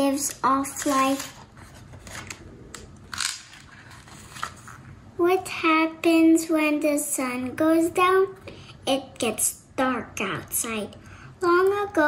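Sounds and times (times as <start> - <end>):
book page turning: 0.6 - 4.8.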